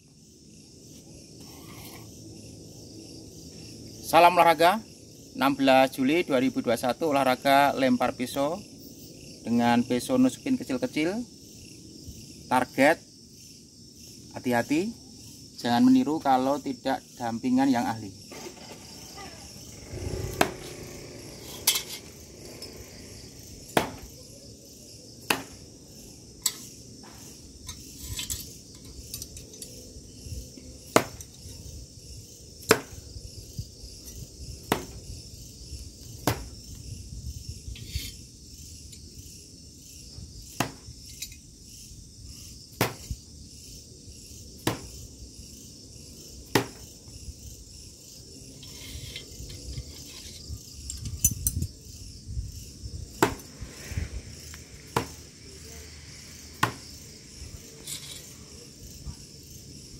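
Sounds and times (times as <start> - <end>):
crickets chirping: 0.0 - 59.9
knives thudding into wooden block: 23.7 - 24.1, 25.3 - 25.6, 36.2 - 36.6, 40.6 - 40.9, 42.8 - 43.2, 44.6 - 45.0, 46.5 - 46.8, 53.2 - 53.5, 56.6 - 56.9.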